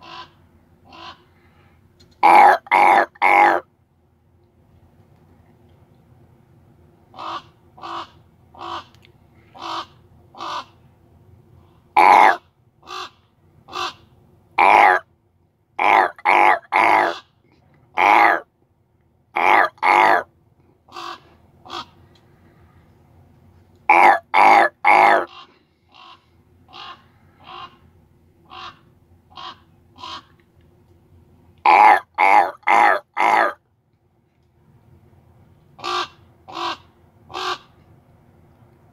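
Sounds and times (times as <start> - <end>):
crow cawing: 0.0 - 1.6, 2.2 - 3.6, 7.2 - 8.9, 9.6 - 10.7, 12.0 - 14.0, 14.6 - 15.0, 15.8 - 17.2, 18.0 - 18.4, 19.4 - 20.2, 20.9 - 22.0, 23.9 - 27.8, 28.5 - 30.3, 31.7 - 33.6, 35.8 - 37.7.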